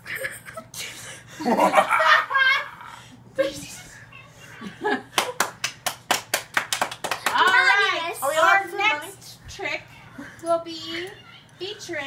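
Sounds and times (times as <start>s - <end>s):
hand clapping: 5.1s - 7.8s.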